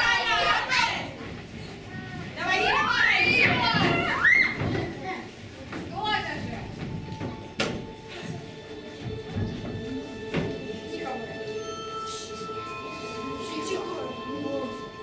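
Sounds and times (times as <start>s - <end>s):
children shouting: 0.0s - 1.2s, 2.0s - 5.2s.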